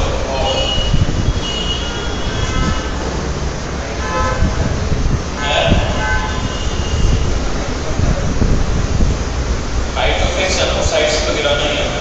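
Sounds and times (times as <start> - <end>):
loud background rumble: 0.0 - 12.0
horn-like toots: 0.4 - 3.1, 3.9 - 4.7, 5.4 - 7.3.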